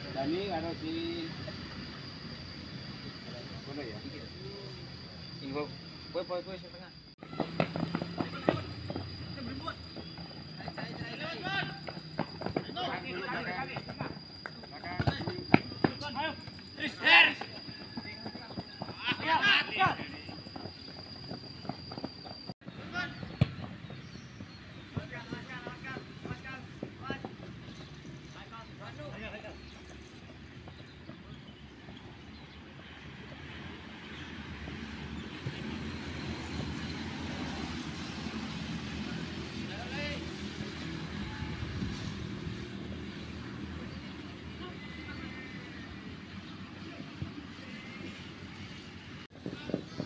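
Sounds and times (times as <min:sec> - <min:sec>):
distant voices calling: 0:06.9 - 0:38.1
running footsteps on hard ground: 0:07.2 - 0:13.0, 0:13.7 - 0:28.4.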